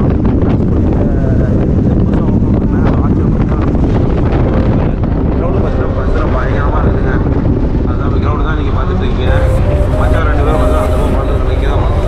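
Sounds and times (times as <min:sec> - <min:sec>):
passengers talking: 0:04.8 - 0:12.0
road noise: 0:08.7 - 0:12.0.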